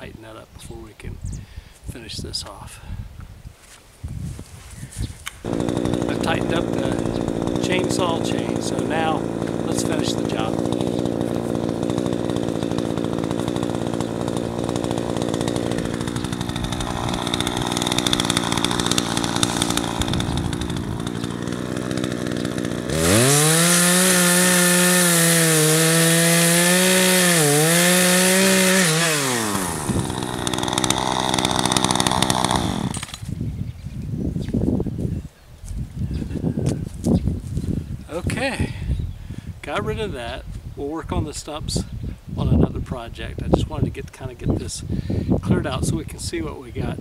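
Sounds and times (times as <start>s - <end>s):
brush rustling and crackling: 3.5s - 5.5s
chainsaw idling and revving: 5.4s - 33.3s.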